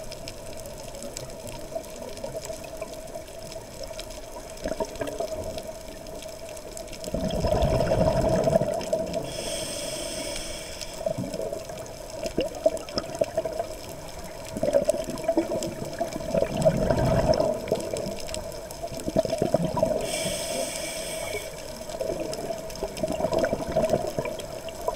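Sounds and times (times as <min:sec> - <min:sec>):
exhaled bubbles underwater: 0:00.0 - 0:24.9
regulator hissing inhale: 0:09.2 - 0:11.2, 0:20.0 - 0:22.0.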